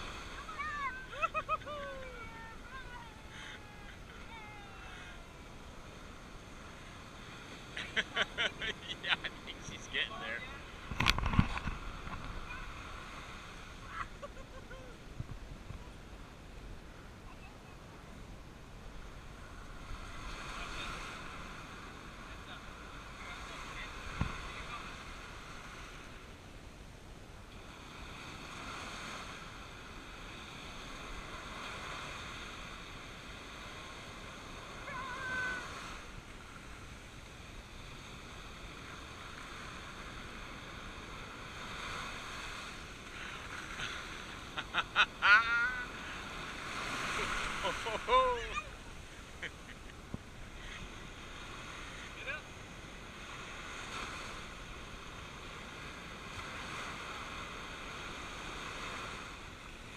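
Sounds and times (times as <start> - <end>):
surf washing up a beach: 0.0 - 59.9
person laughing: 1.0 - 2.3, 7.8 - 9.6, 13.9 - 15.0, 43.8 - 46.0, 47.1 - 48.7.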